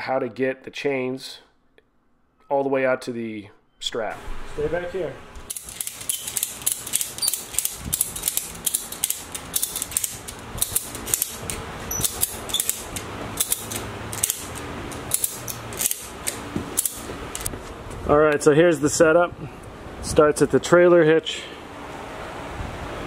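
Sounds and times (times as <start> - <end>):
ratchet strap pawl clicking: 5.5 - 17.5.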